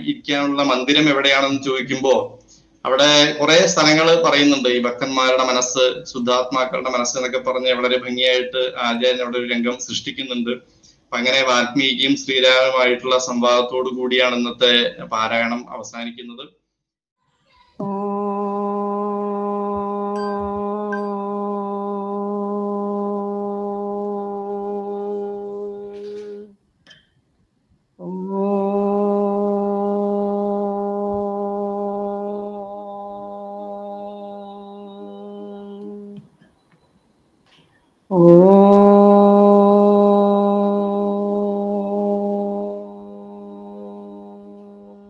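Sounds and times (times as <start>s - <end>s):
woman chanting a long note: 17.8s - 26.5s, 28.0s - 36.2s, 38.1s - 45.0s.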